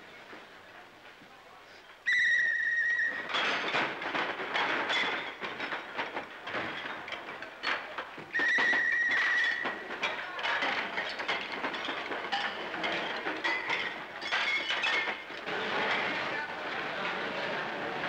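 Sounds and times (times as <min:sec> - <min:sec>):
plates and cutlery clinking: 0:09.1 - 0:18.0
murmur of voices: 0:15.4 - 0:18.0.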